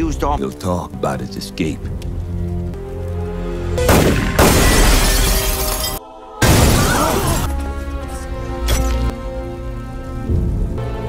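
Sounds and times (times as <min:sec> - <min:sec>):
film music: 0:00.0 - 0:11.0
window glass shattering: 0:03.9 - 0:07.5.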